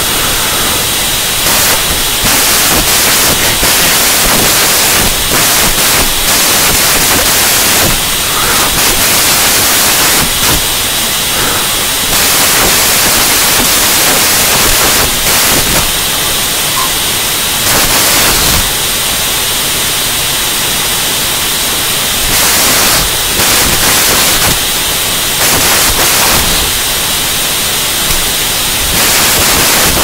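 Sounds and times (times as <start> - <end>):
loud static hiss: 0.0 - 30.0.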